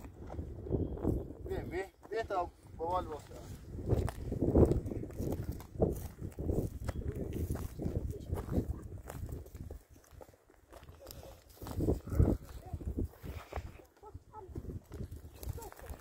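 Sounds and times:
footsteps on loose stones: 0:02.0 - 0:16.0
voices: 0:10.9 - 0:16.0.

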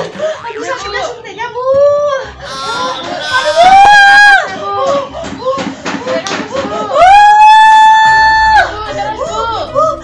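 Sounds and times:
woman wailing: 0:01.7 - 0:04.5.

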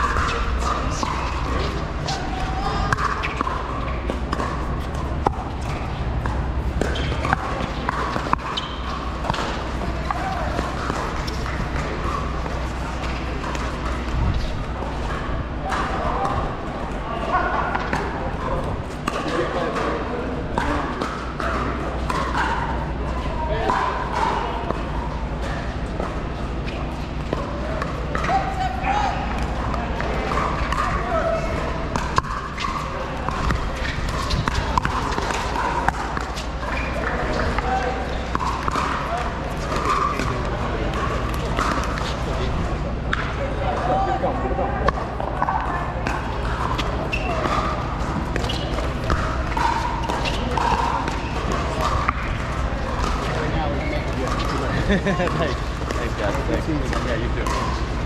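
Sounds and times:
background chatter of voices: 0:00.0 - 0:58.0.

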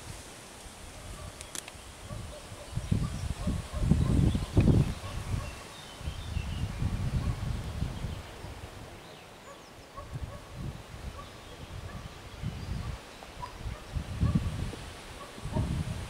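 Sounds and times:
wind buffeting microphone: 0:00.0 - 0:09.1, 0:09.8 - 0:16.0.

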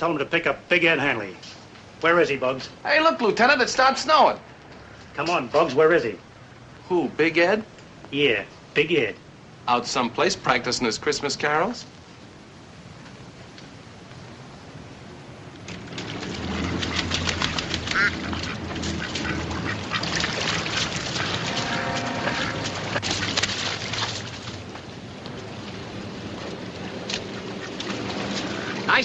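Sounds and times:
ducks quacking: 0:16.5 - 0:23.8, 0:27.2 - 0:29.0.

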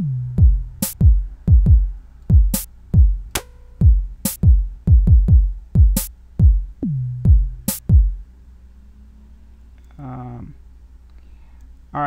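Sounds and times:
electronic kick drum: 0:00.4 - 0:06.7, 0:07.3 - 0:08.2
faint low room hum: 0:08.1 - 0:12.0.

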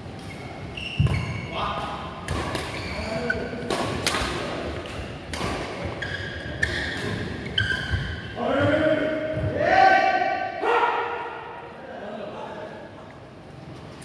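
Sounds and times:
rackets striking shuttlecock: 0:03.6 - 0:08.1.

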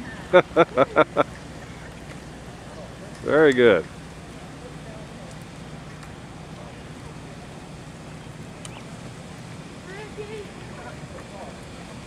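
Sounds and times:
low street rumble with hiss: 0:00.0 - 0:12.0.

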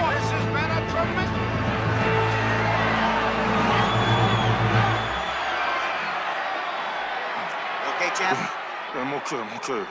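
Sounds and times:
arena crowd noise: 0:00.0 - 0:09.9.

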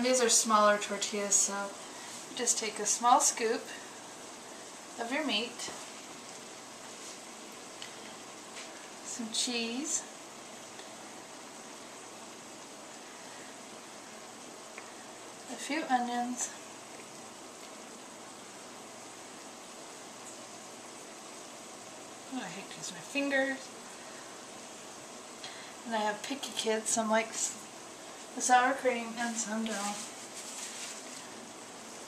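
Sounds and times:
steady room tone hiss: 0:00.0 - 0:32.0.

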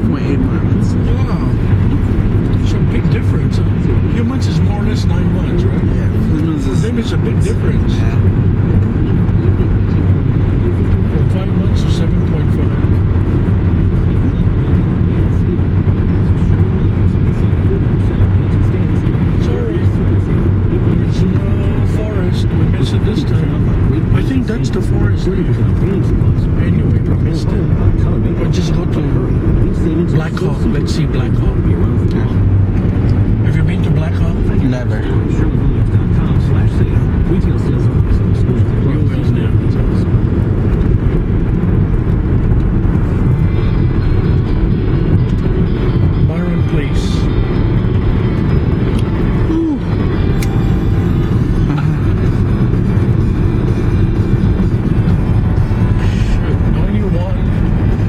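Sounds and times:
car cabin road rumble: 0:00.0 - 0:58.0.

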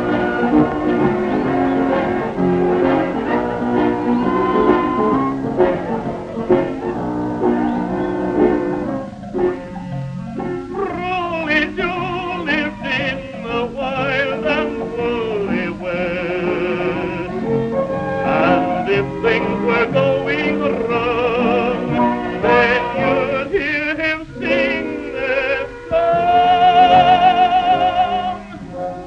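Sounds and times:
saloon band playing western tune: 0:00.0 - 0:09.7, 0:10.4 - 0:28.8.

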